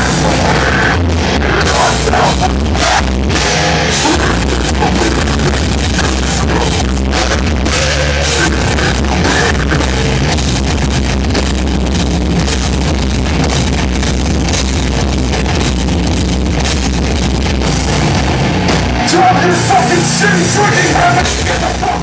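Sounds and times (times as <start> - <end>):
hardcore band playing live: 0.0 - 22.0.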